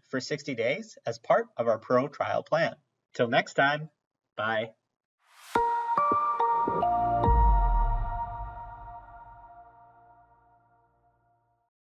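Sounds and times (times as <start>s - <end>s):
electronic chord with bass note: 5.6s - 10.0s.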